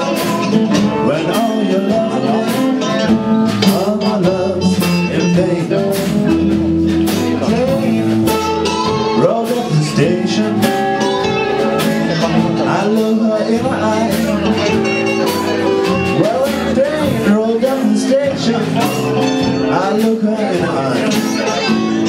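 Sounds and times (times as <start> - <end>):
acoustic guitars playing blues: 0.0 - 22.0.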